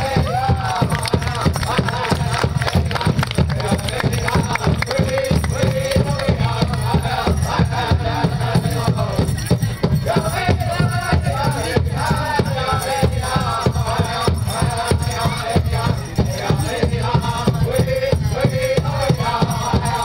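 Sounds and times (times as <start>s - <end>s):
big drum steady beat: 0.0s - 20.0s
high wavering chanted vocals: 0.0s - 20.0s.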